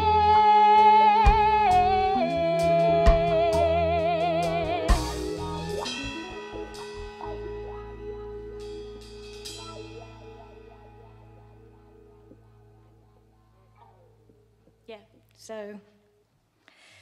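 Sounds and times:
live band playing: 0:00.0 - 0:12.8
cymbal crash: 0:04.9 - 0:11.8.

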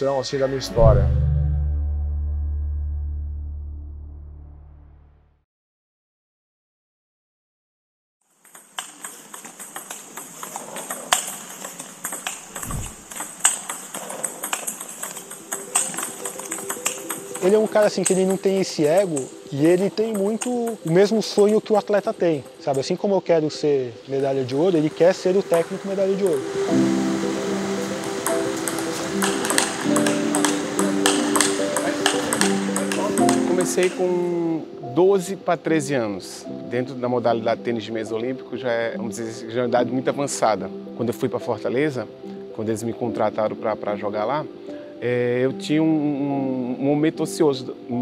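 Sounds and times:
background music with held tones: 0:00.0 - 0:05.2, 0:11.3 - 0:48.0
low falling boom: 0:00.8 - 0:05.1
table tennis balls clicking: 0:08.4 - 0:21.7, 0:28.0 - 0:34.0.

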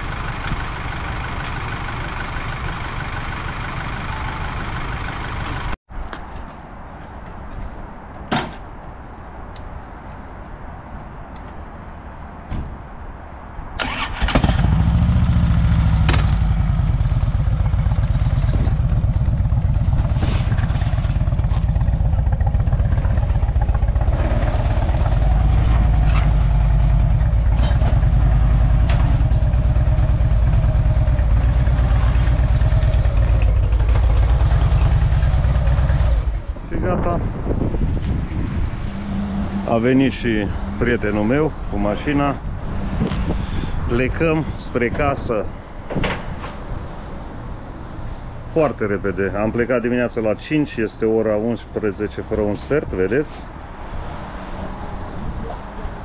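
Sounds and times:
motorcycle engine starting and running: 0:13.8 - 0:37.0.

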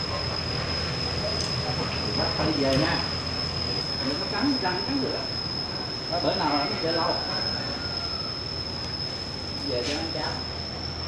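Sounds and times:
high-pitched whine: 0:00.0 - 0:11.0.

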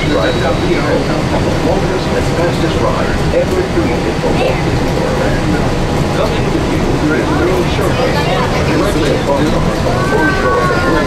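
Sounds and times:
monorail train rumbling: 0:00.0 - 0:11.0
passengers chattering: 0:00.0 - 0:11.0.

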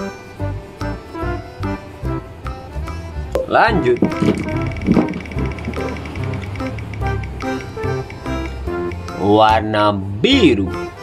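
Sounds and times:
background music: 0:00.0 - 0:11.0
spin wheel ticking: 0:03.4 - 0:08.6.

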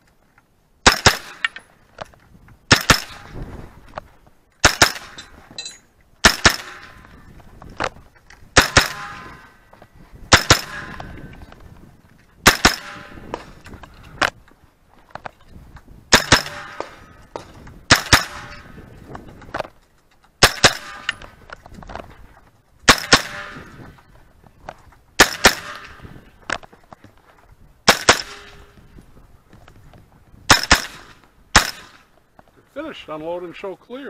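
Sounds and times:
gunshots with short echo: 0:00.8 - 0:01.6, 0:02.7 - 0:03.4, 0:04.6 - 0:05.2, 0:06.2 - 0:07.1, 0:08.5 - 0:09.6, 0:10.3 - 0:11.3, 0:12.4 - 0:13.6, 0:16.1 - 0:18.9, 0:20.4 - 0:22.0, 0:22.8 - 0:23.8, 0:25.2 - 0:26.2, 0:27.8 - 0:28.8, 0:30.5 - 0:32.1.

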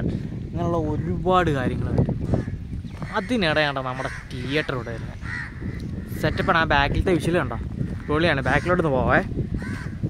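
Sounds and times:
crows cawing: 0:02.2 - 0:06.8, 0:07.8 - 0:10.0.

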